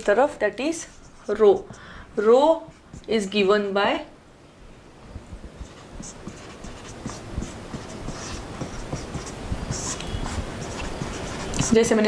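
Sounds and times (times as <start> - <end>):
marker scratching on whiteboard: 0.7 - 3.7, 5.1 - 12.0
marker tapping on board: 5.2 - 12.0.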